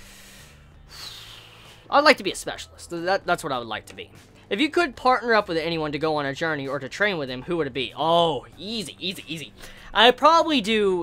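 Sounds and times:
man breathing: 0.0 - 1.9, 9.5 - 10.0.

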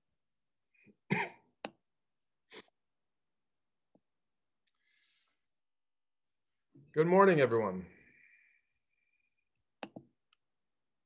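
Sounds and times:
person coughing: 1.1 - 1.5.

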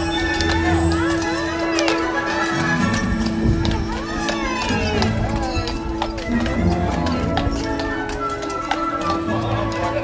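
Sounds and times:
horse hooves clip-clopping on pavement: 0.0 - 10.0.

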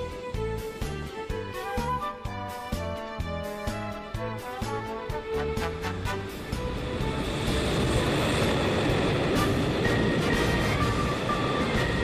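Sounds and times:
background music: 0.0 - 12.0
freight train passing: 0.0 - 12.0.

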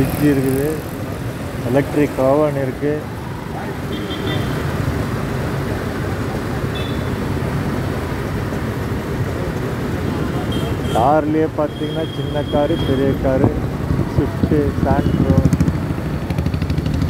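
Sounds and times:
road traffic: 0.0 - 17.0.

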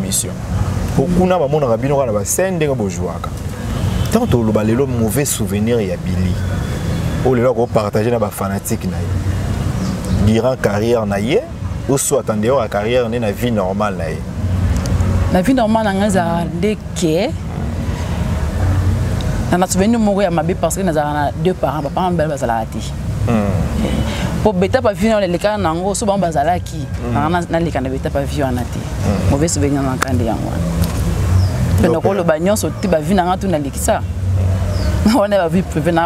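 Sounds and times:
low engine rumble: 12.9 - 36.0
person speaking: 23.2 - 24.4, 28.7 - 30.3, 31.7 - 32.5.

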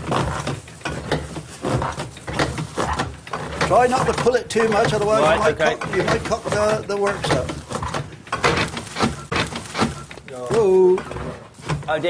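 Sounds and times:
mat-making machine clicking: 2.0 - 11.2.

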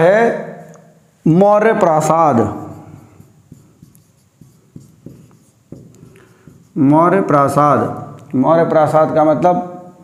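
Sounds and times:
marker writing on a whiteboard: 1.9 - 8.3.

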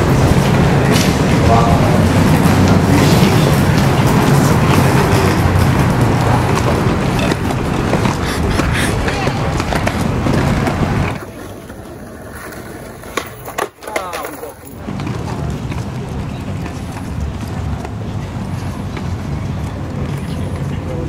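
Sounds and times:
steady rushing noise: 0.0 - 13.5
skateboards clacking on ground: 0.0 - 21.0
voices: 0.0 - 21.0.

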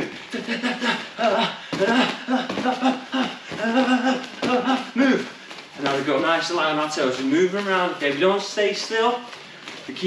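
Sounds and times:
person making short vocal bursts: 0.0 - 5.4.

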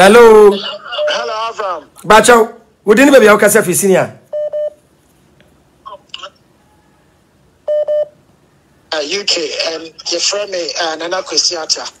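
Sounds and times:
telephone line beeps: 4.3 - 4.8, 7.7 - 8.2.

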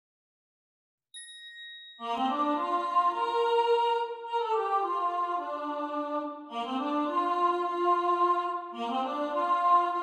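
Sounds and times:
high bell-like ding: 1.2 - 2.1.

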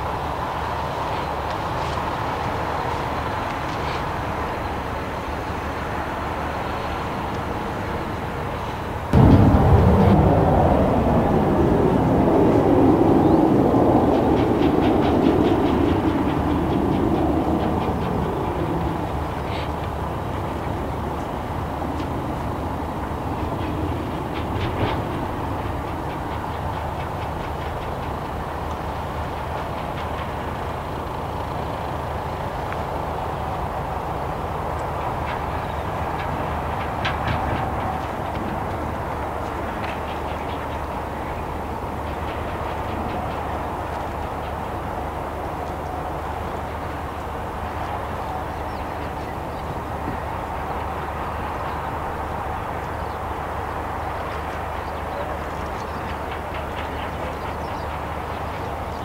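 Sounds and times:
engine hum: 0.0 - 59.0
jet aircraft passing: 0.0 - 59.0.

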